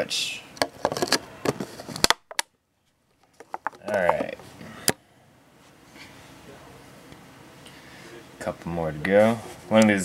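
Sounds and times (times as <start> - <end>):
handling clicks and taps: 3.2 - 4.4.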